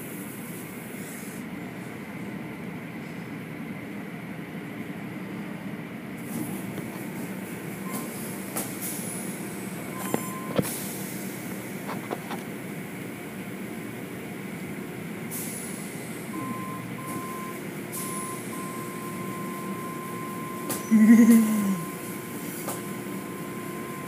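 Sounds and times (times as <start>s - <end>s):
car wash machinery hum: 0.0s - 24.0s.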